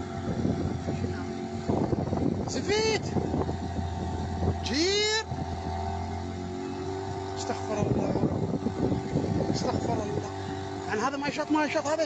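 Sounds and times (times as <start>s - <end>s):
motorboat engine running: 0.0s - 12.0s
wind and water rushing: 0.0s - 12.0s.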